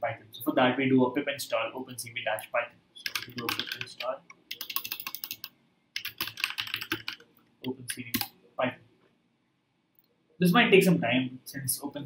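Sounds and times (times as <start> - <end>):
typing on computer keyboard: 3.0 - 7.3, 8.1 - 8.3.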